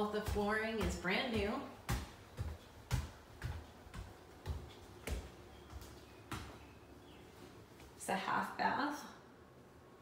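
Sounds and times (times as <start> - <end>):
footsteps on stairs and planks: 0.0 - 8.0.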